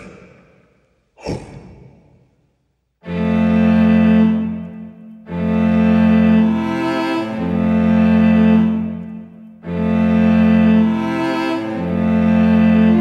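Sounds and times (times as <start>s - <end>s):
string section low chords: 3.0s - 13.0s.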